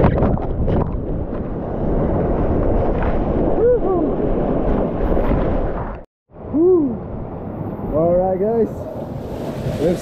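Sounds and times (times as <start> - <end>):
man whooping: 6.5 - 7.0.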